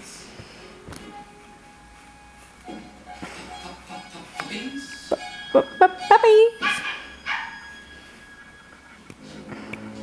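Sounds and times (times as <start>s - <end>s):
dog yelping on television: 4.4s - 8.7s
dog barks on television: 5.9s - 7.8s.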